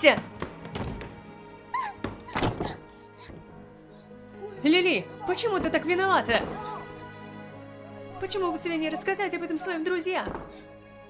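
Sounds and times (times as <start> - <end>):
knocks and scuffs at door: 0.0 - 1.2
soft background music: 0.0 - 11.0.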